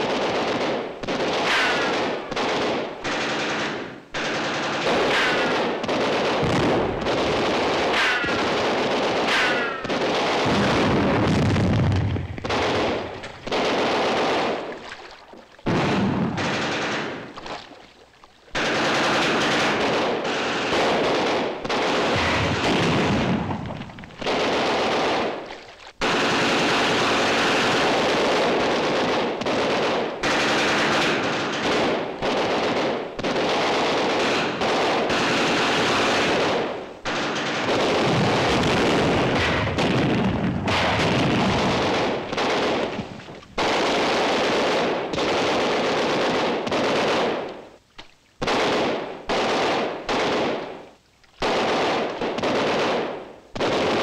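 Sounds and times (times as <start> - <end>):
automatic machine-gun fire: 0.0 - 14.8, 15.7 - 17.6, 18.5 - 47.5, 48.4 - 50.8, 51.4 - 54.0.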